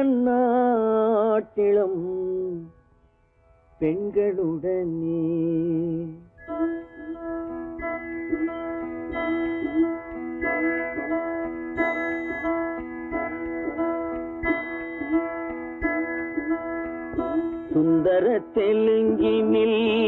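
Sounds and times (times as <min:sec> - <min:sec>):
plucked string melody: 0:00.0 - 0:20.0
steady held tones: 0:01.6 - 0:20.0.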